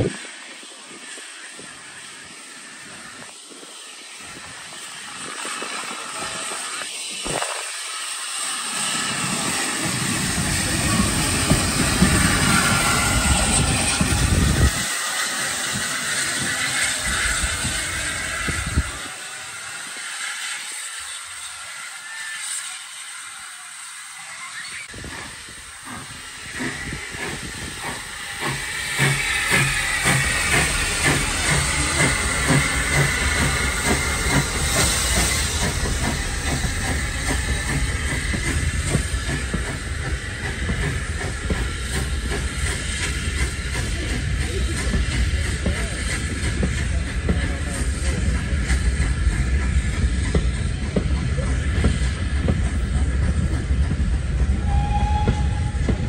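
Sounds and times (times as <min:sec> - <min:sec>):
steam locomotive hissing: 0:00.0 - 0:56.0
locomotive exhaust beats: 0:24.9 - 0:56.0.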